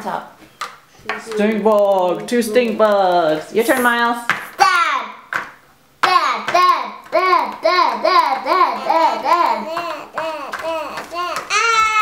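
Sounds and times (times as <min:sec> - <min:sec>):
child's voice: 0:04.6 - 0:05.2, 0:06.0 - 0:12.0
game piece tapping cardboard board: 0:05.3 - 0:07.8, 0:09.3 - 0:11.9.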